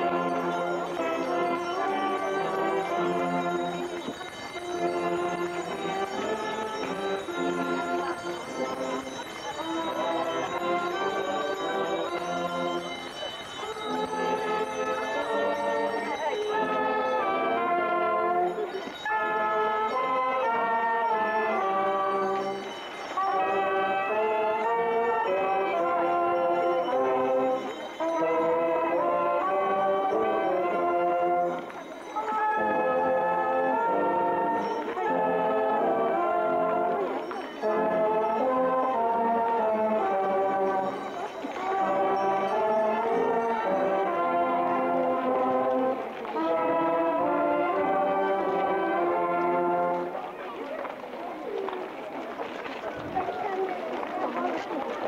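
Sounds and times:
brass band playing a hymn: 0:00.0 - 0:50.4.

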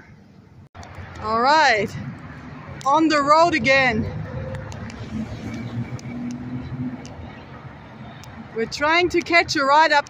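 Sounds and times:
road traffic rumble: 0:00.0 - 0:10.0
car approaching: 0:00.5 - 0:10.0.

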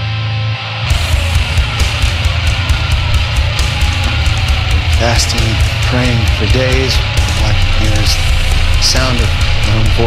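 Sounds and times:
distorted electric guitars: 0:00.0 - 0:10.0
drums with cymbal hits: 0:00.9 - 0:10.0.

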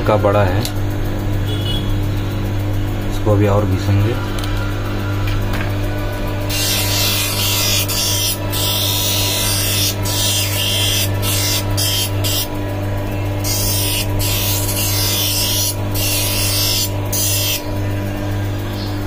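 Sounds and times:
edger motor humming: 0:00.6 - 0:19.0.

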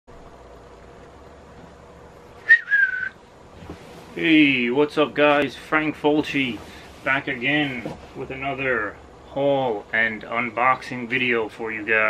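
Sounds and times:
faint room hum: 0:00.1 - 0:12.0
high whistle-like squeak: 0:02.5 - 0:03.2.

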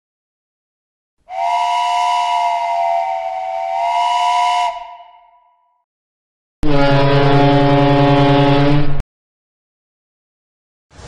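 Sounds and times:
steam whistle blowing: 0:01.3 - 0:05.7, 0:06.6 - 0:09.0.

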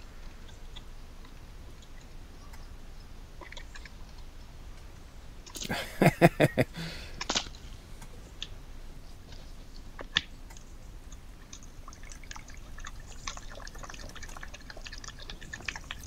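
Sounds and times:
badger crunching and chewing nuts: 0:09.4 - 0:16.0.

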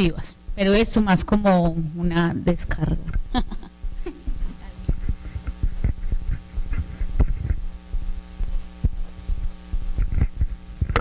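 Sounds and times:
electrical mains hum: 0:00.0 - 0:11.0
microphone handling thumps: 0:00.4 - 0:11.0.

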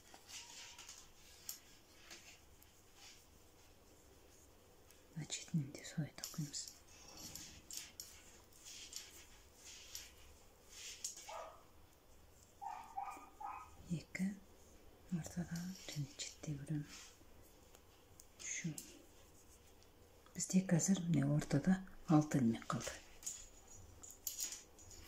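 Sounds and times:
knitting needles clicking: 0:04.9 - 0:10.2.

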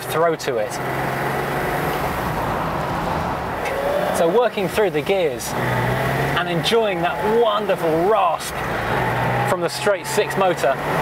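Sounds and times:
car engine running: 0:00.0 - 0:11.0
road noise: 0:00.0 - 0:11.0.

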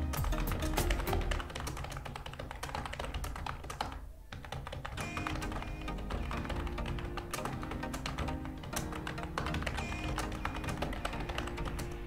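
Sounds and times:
background music: 0:00.0 - 0:02.1, 0:05.0 - 0:12.0
computer keyboard typing: 0:00.0 - 0:12.0.

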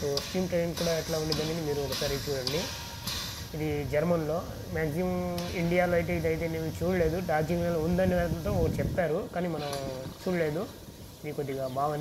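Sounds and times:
person talking: 0:00.0 - 0:02.7, 0:03.5 - 0:12.0.

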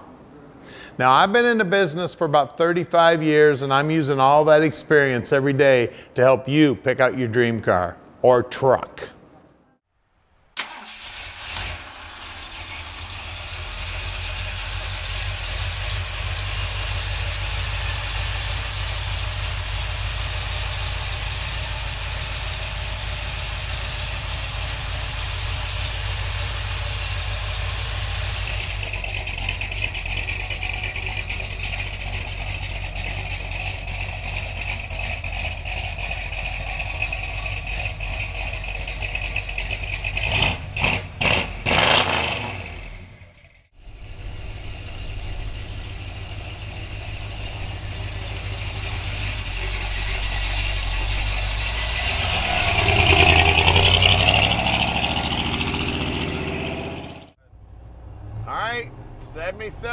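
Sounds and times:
truck engine starting and idling: 0:10.5 - 0:59.9.

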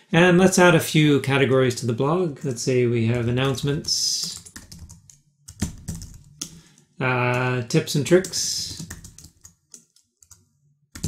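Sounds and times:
computer keyboard keystrokes: 0:03.1 - 0:07.5, 0:08.2 - 0:10.4.

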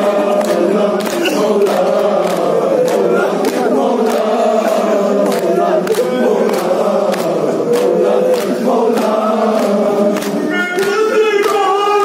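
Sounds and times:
higher voice chanting: 0:00.0 - 0:04.0
men chanting in unison: 0:00.0 - 0:12.0
rhythmic chest-beating: 0:00.0 - 0:12.0.

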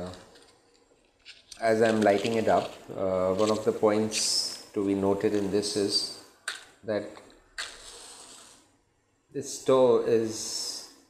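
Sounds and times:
match striking and hissing: 0:07.6 - 0:08.6.

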